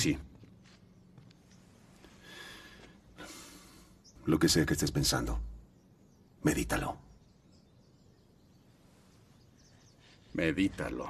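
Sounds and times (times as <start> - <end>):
faint breathing: 1.8 - 4.2.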